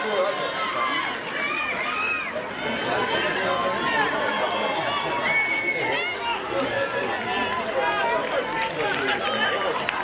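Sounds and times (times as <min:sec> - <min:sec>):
players calling and shouting: 0:00.0 - 0:10.0.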